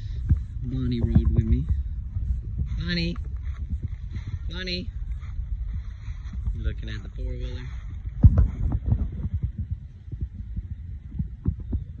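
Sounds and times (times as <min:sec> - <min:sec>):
low thumps and knocks: 0:00.0 - 0:12.0
footsteps rustling leaves: 0:01.8 - 0:08.8.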